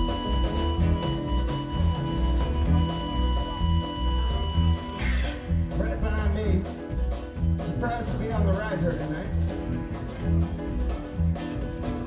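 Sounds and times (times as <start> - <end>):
wavering lead melody: 0.0 - 7.6
live band instrumental: 0.0 - 12.0.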